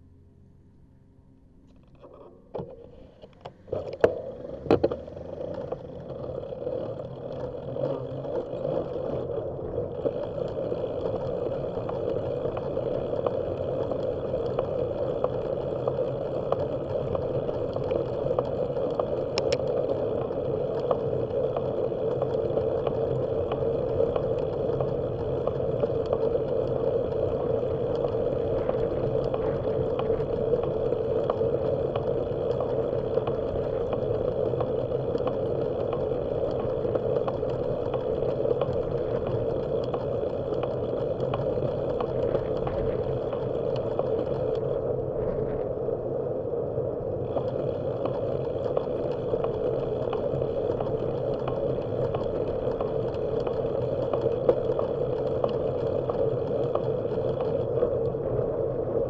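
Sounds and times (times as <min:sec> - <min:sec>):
bicycle clicks and knocks: 0:01.7 - 0:45.6, 0:47.2 - 0:58.2
bicycle tyre noise: 0:01.7 - 0:59.0
wind on microphone: 0:22.5 - 0:59.0.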